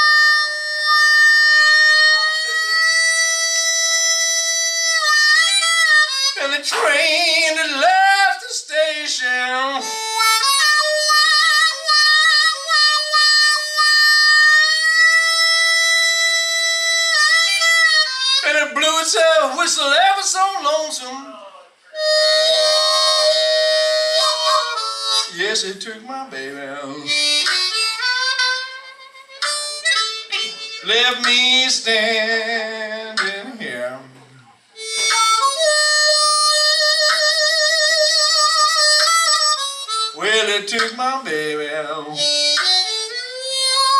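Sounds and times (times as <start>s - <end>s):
blues harmonica: 0.0s - 20.9s, 21.8s - 43.9s
man singing: 6.4s - 10.0s, 18.4s - 21.8s, 24.3s - 27.5s, 30.5s - 34.6s, 40.1s - 42.5s.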